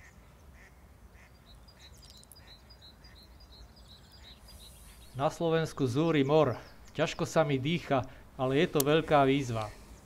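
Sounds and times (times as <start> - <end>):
short bird calls: 0.0 - 5.4
high bird chirping: 1.4 - 8.1.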